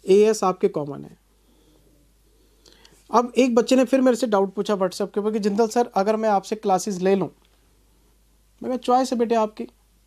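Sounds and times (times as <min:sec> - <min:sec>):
man speaking: 0:00.0 - 0:01.2, 0:03.1 - 0:07.4, 0:08.6 - 0:09.8
faint breath intake: 0:01.3 - 0:03.1.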